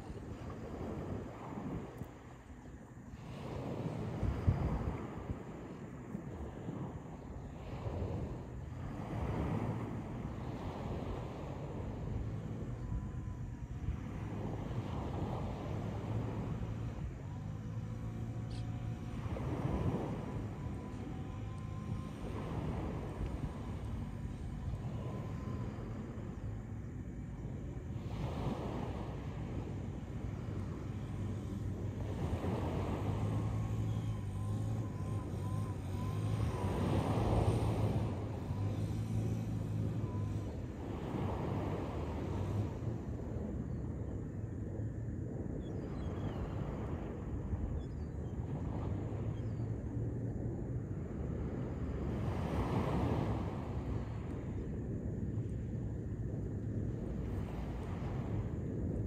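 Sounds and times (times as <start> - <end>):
sea waves breaking: 0.0 - 59.0
wind buffeting microphone: 0.0 - 59.0.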